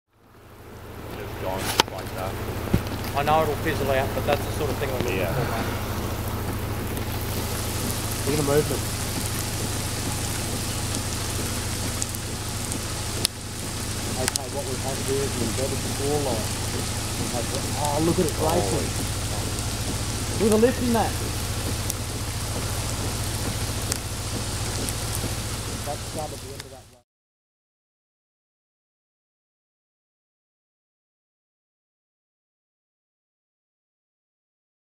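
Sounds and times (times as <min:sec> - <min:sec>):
rain hissing: 0:00.1 - 0:27.0
constant low hum: 0:00.2 - 0:27.0
sharp drop ticks: 0:06.0 - 0:27.0.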